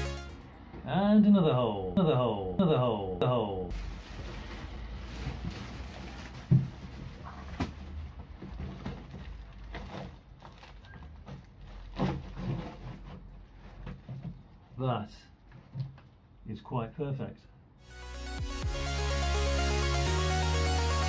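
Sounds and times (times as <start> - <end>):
ducting rustling and bumping: 4.0 - 14.8.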